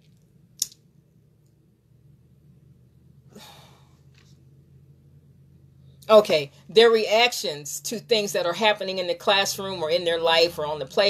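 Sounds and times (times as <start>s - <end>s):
faint room hum: 0.0s - 11.0s
woman's mouth click: 0.6s - 0.8s
soft breath: 3.3s - 4.1s.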